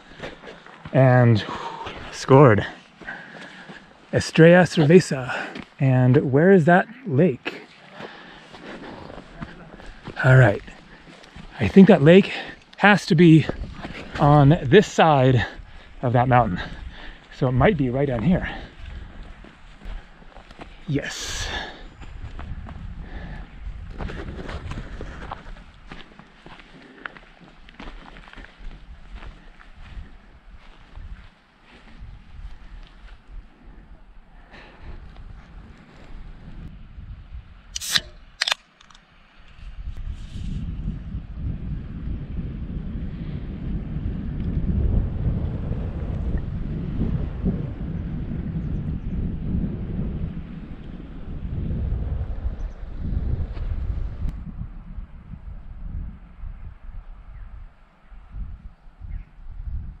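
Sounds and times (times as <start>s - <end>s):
wind buffeting microphone: 8.1s - 26.7s, 27.8s - 38.4s, 39.4s - 60.0s
sharp clicks: 37.8s - 39.0s.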